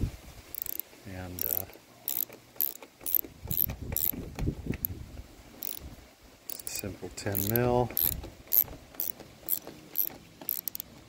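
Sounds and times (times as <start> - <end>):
ratchet pawl clicking: 0.5 - 4.2, 5.6 - 5.8, 6.5 - 10.9.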